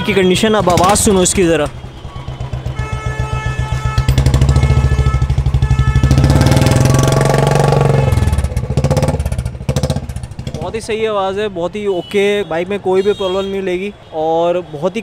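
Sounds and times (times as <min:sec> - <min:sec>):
motorcycle engine idling and revving: 0:00.0 - 0:11.4.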